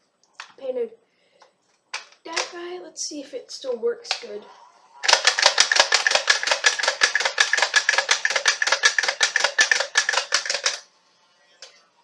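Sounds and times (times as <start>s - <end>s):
toy blaster ratcheting clicks: 5.0s - 10.8s.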